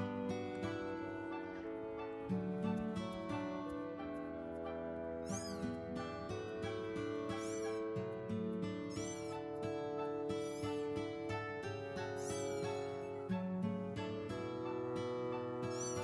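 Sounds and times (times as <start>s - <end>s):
background music: 0.0s - 16.0s
kittens mewing: 5.2s - 8.1s, 8.8s - 16.0s.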